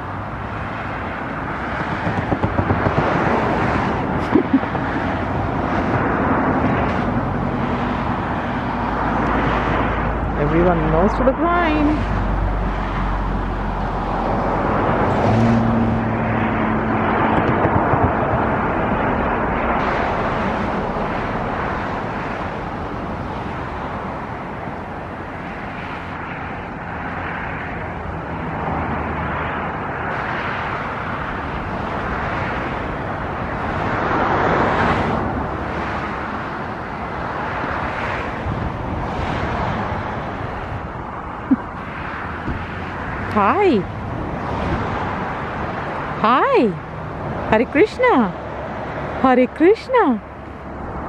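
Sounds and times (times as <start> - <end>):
steady rushing outdoor noise: 0.0 - 51.0.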